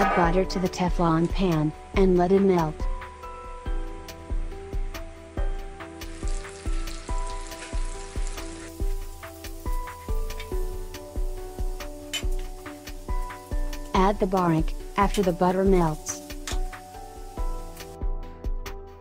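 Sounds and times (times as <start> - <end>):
background music with steady beat: 0.0 - 19.0
butter sizzling in a frying pan: 3.1 - 18.1.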